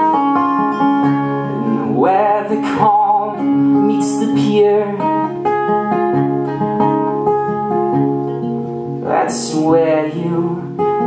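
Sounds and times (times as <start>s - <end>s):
acoustic guitar picking: 0.0s - 11.0s.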